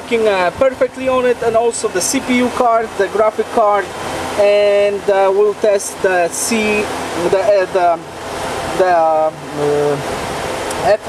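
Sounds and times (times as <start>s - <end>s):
steady background hiss: 0.0s - 11.0s
man's hesitation sounds: 8.7s - 10.2s.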